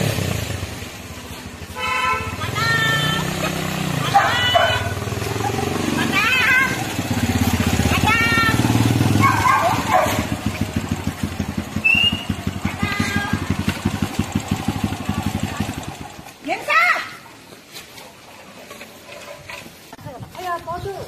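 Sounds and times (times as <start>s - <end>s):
motorcycle engine idling: 0.0s - 16.4s.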